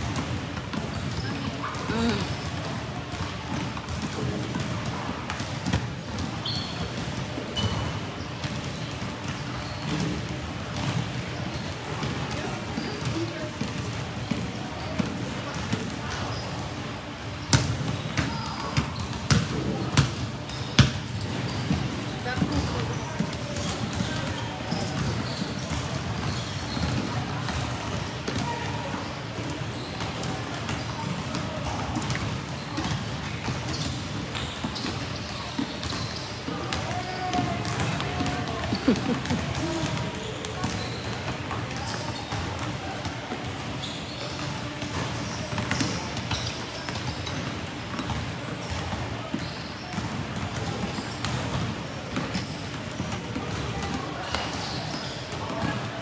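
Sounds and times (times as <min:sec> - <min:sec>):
basketballs bouncing on court: 0:00.0 - 0:56.0
voices chattering: 0:00.5 - 0:04.7, 0:18.2 - 0:50.9.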